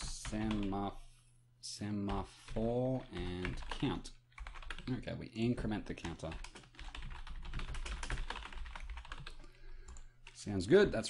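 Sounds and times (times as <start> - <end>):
computer keyboard typing: 0.0 - 0.8, 2.0 - 5.0, 5.6 - 10.4.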